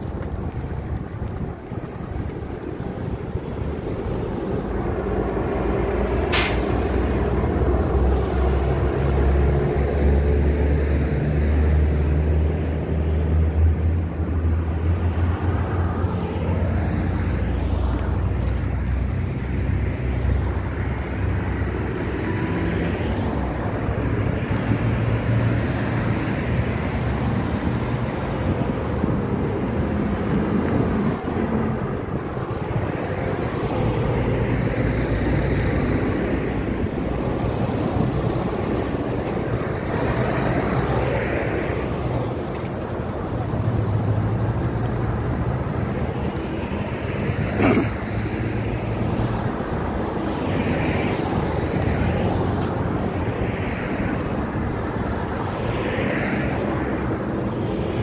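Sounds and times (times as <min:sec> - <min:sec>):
road traffic passing: 0:00.0 - 0:58.0
wind rumbling on microphone: 0:00.0 - 0:58.0.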